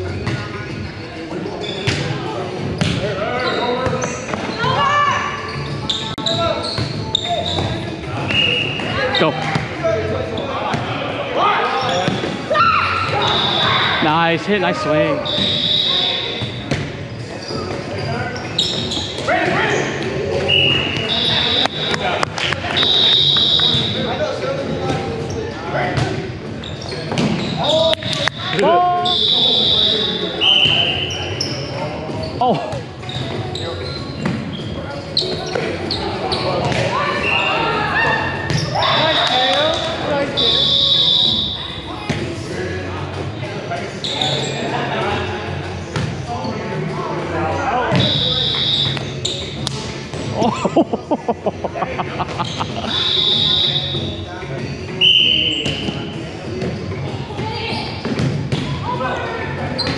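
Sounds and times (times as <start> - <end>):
high-pitched shoe squeaks: 2.8 - 8.9, 17.4 - 19.9, 26.6 - 27.7, 29.0 - 32.4, 33.0 - 37.7, 44.0 - 44.6, 48.0 - 49.6
players calling out: 11.3 - 16.6, 17.3 - 24.1, 26.7 - 41.9, 47.8 - 54.2.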